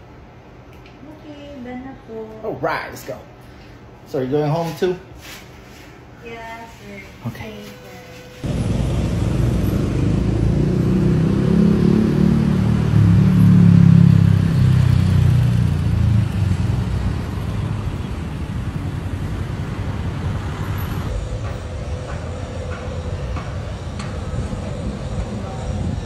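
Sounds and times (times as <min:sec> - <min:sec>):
road traffic rumble: 0:08.4 - 0:26.0.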